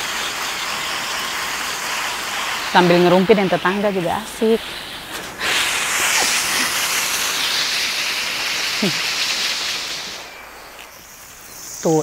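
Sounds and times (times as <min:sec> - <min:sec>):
garden hose spraying hiss: 0:00.0 - 0:12.0.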